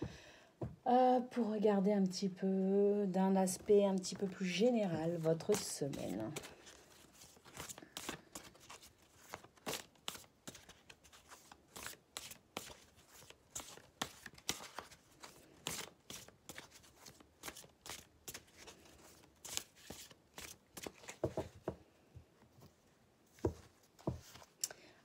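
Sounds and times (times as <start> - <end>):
cards being shuffled: 5.0 - 21.6, 23.4 - 24.6.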